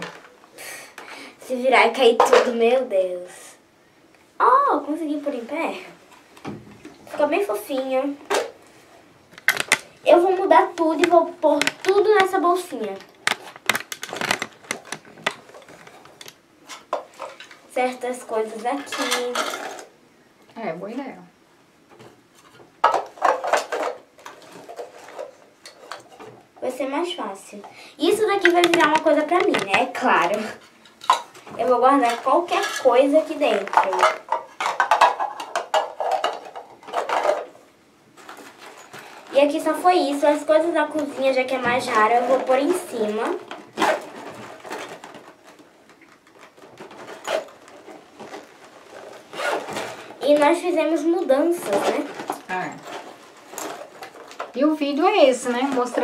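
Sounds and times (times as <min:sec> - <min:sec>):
plastic accessories rattling: 0:09.3 - 0:17.6, 0:18.7 - 0:19.9, 0:22.4 - 0:26.2, 0:28.0 - 0:37.6, 0:40.2 - 0:56.0
plastic pouch rustling: 0:09.4 - 0:17.4, 0:28.1 - 0:31.2, 0:38.1 - 0:54.6.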